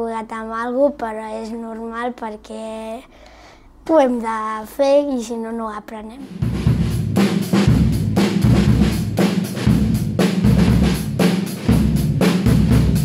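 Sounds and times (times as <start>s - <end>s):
bass drum thumps: 6.3s - 13.0s.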